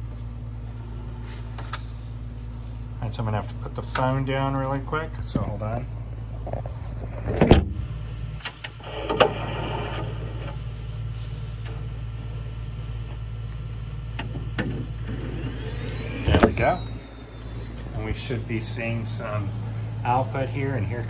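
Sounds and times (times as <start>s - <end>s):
printer humming: 0.0s - 21.0s.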